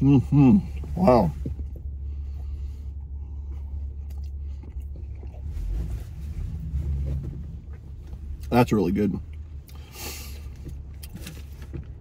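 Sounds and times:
low rumble inside vehicle cab: 0.0s - 12.0s.

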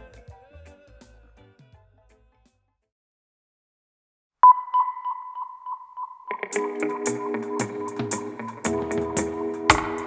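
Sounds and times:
high sonar-like ping with echo: 4.4s - 8.7s.

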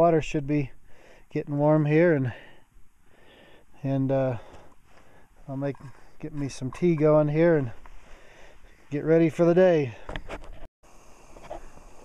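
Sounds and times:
low steady ambient noise: 0.0s - 12.0s.

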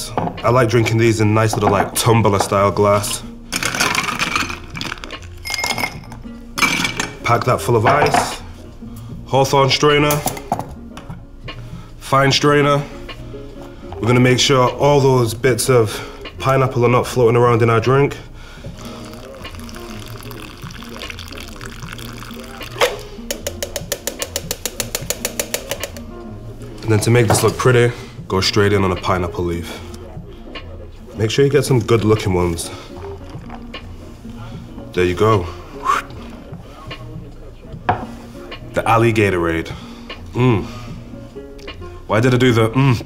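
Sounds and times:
background music: 0.0s - 43.0s
ice cubes clinking into glass: 3.6s - 7.0s
glass ringing: 5.4s - 7.2s
liquid pouring into glass: 19.0s - 23.2s.

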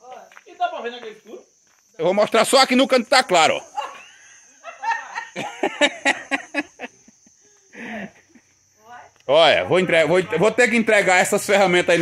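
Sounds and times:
crickets trilling: 0.0s - 12.0s
people chuckling and talking: 3.8s - 8.6s.

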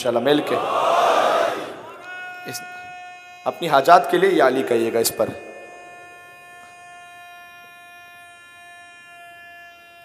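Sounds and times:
loudspeaker feedback whine: 1.6s - 8.8s.

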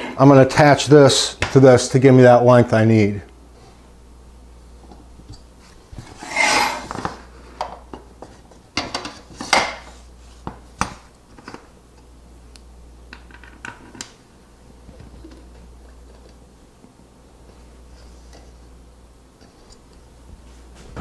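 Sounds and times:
metal bars scraping on wood: 6.0s - 7.0s.

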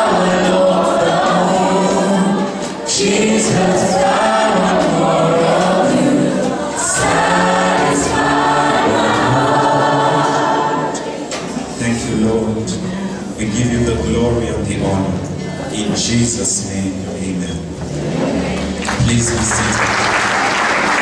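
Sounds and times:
vocal group singing gospel song: 0.0s - 19.7s.

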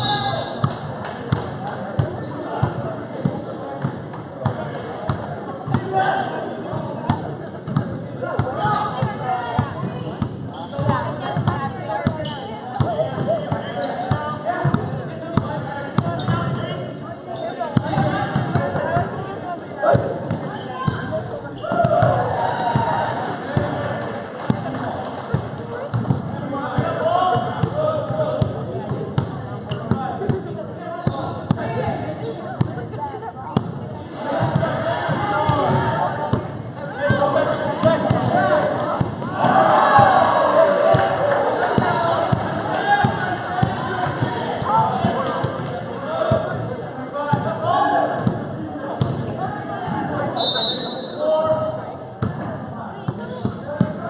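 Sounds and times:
murmur of spectator chatter: 0.0s - 54.0s.

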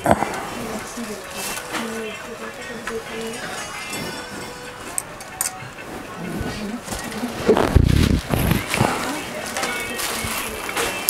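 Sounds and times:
background music: 0.0s - 11.0s
faint voices: 0.0s - 11.0s.

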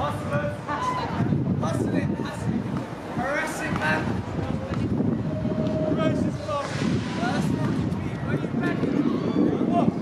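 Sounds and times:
low rumble of traffic: 0.0s - 10.0s
wind on microphone: 0.0s - 10.0s.

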